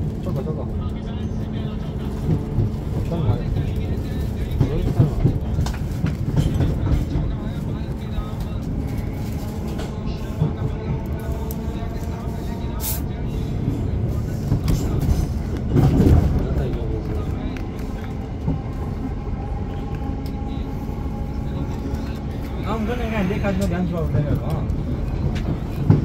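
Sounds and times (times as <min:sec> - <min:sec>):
train wheels rumbling on track: 0:00.0 - 0:26.0.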